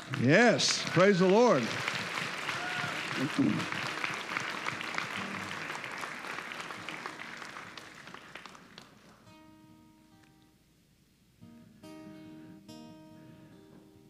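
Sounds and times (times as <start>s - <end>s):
congregation applauding: 0.0s - 9.4s
acoustic guitar notes ringing: 11.3s - 14.0s.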